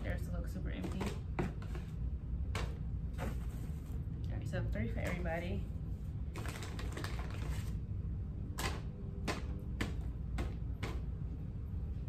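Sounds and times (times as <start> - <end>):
low room hum: 0.0 - 12.0
wrapper crinkling: 6.3 - 7.8.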